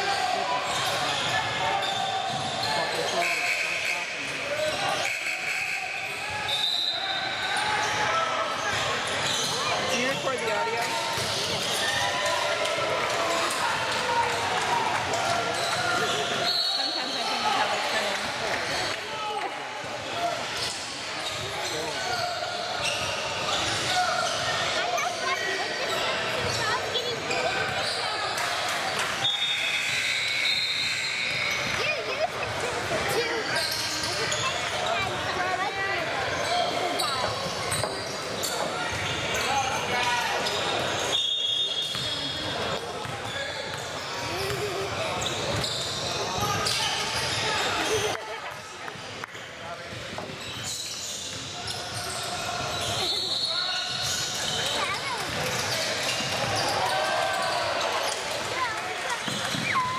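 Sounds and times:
sneakers squeaking: 0.0 - 12.2, 15.0 - 17.8, 20.2 - 59.9
shouts and chatter: 0.0 - 59.9.

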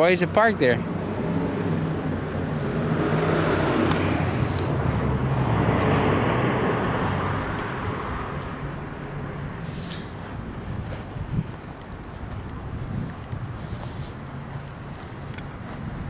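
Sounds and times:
vehicle passing by: 0.1 - 16.0.

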